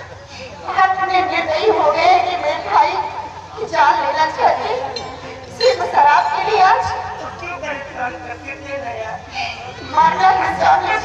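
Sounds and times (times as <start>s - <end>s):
actors speaking dialogue: 0.1s - 11.0s.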